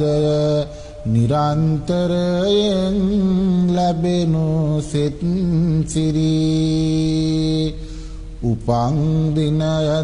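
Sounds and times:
monk chanting verse: 0:00.0 - 0:07.8, 0:08.4 - 0:10.0.

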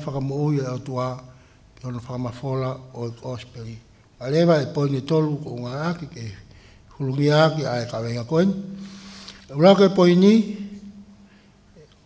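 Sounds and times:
man preaching into a microphone: 0:00.0 - 0:08.8, 0:09.4 - 0:10.9.

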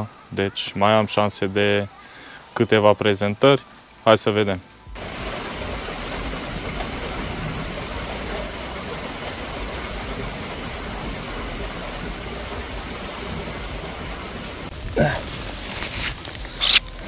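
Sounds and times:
heavy rain on lake: 0:04.9 - 0:17.0.

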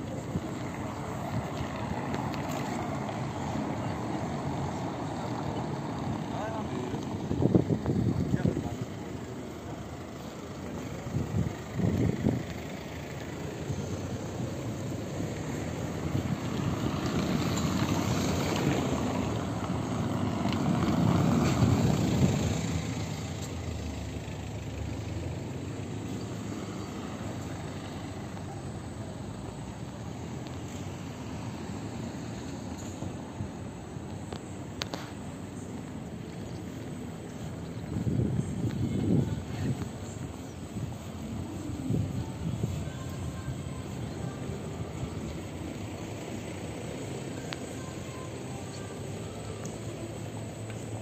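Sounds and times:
car passing over cobblestones: 0:00.0 - 0:51.0
people's voices: 0:00.0 - 0:51.0.

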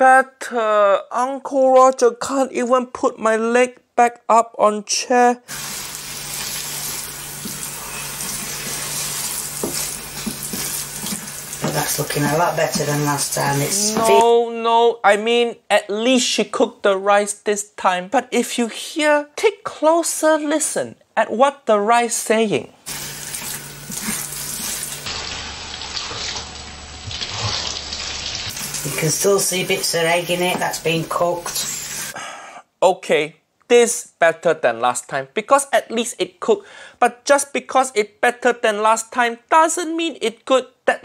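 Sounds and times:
rice sizzling in a wok: 0:05.5 - 0:14.2, 0:22.9 - 0:26.2.

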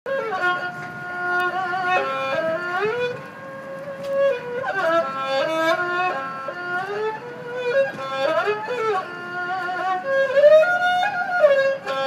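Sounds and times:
bowed fiddle melody: 0:00.1 - 0:12.0.

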